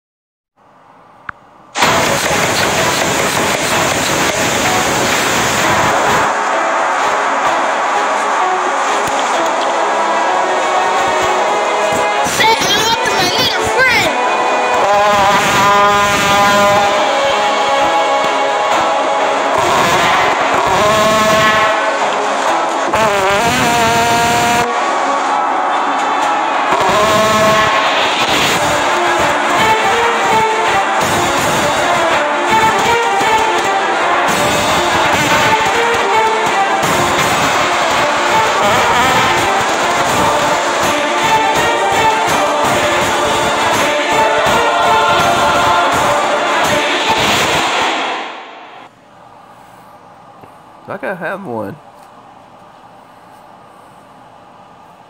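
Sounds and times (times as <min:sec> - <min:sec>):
background music: 0:03.3 - 0:48.9
wobbling trombone blasts: 0:14.7 - 0:17.5, 0:18.7 - 0:25.9, 0:26.6 - 0:47.6.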